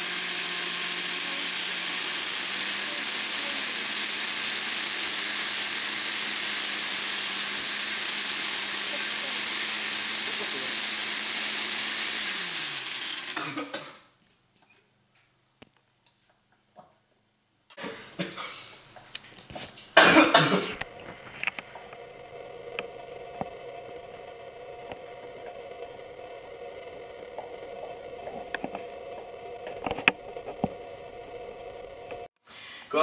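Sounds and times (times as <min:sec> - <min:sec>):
blender motor winding down: 0:00.0 - 0:13.6, 0:20.7 - 0:32.3.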